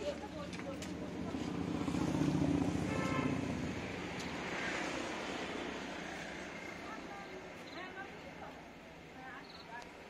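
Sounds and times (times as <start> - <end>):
vehicle engine passing: 0.4 - 7.4.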